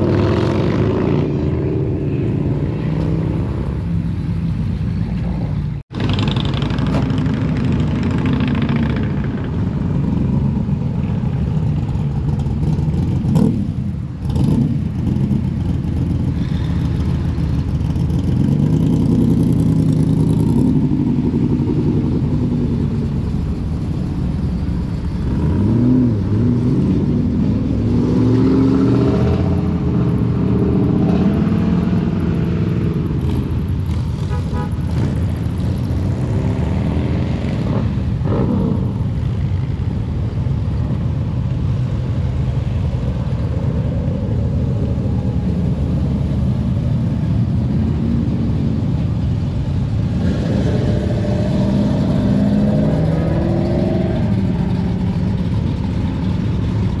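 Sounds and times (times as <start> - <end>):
vehicle engines revving: 0.0 - 57.0.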